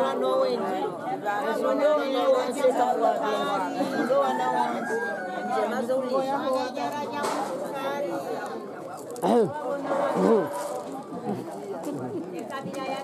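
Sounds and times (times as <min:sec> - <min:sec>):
women chattering: 0:00.0 - 0:13.0.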